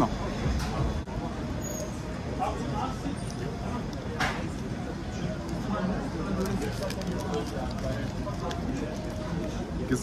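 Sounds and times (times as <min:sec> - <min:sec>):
low street rumble: 0:00.0 - 0:10.0.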